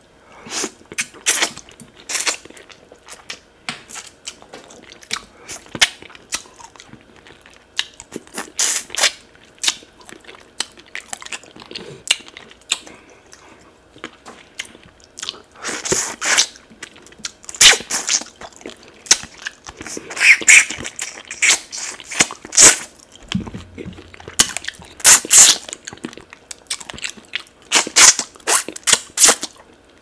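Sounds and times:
chewing and crunching fish: 0.9s - 29.9s.

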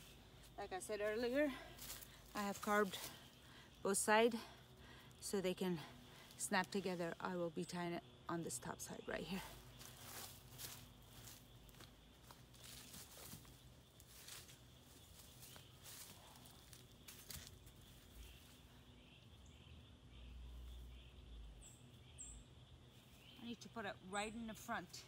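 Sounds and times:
footsteps in dry leaves: 0.0s - 3.4s, 9.5s - 18.7s
bird chirps: 7.0s - 24.8s.

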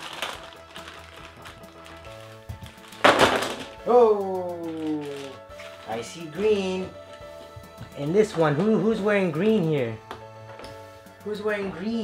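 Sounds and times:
puzzle pieces clattering on table: 0.0s - 3.8s
background music: 0.0s - 12.0s.

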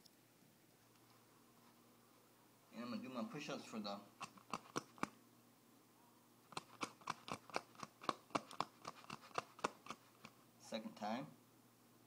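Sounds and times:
microphone handling clicks and scratches: 4.2s - 5.2s, 6.5s - 10.4s.

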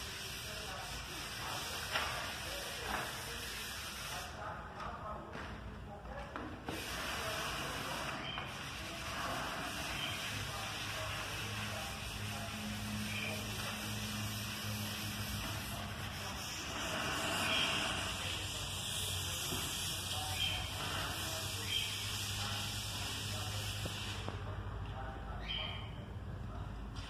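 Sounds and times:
sandpaper scratching on iron: 0.0s - 4.4s, 6.7s - 24.2s.

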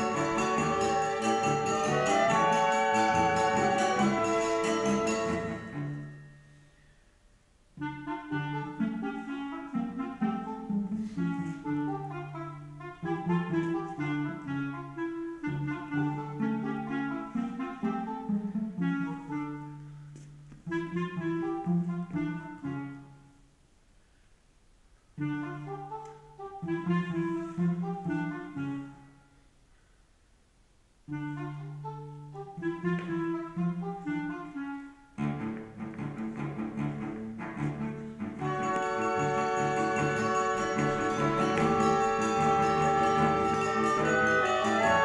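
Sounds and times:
run of pitched notes: 0.0s - 6.9s, 35.2s - 45.0s.

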